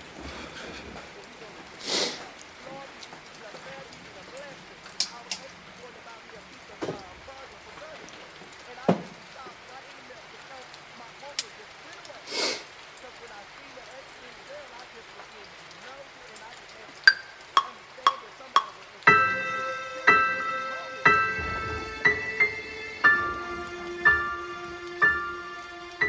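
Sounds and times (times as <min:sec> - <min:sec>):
background noise: 0:00.0 - 0:26.0.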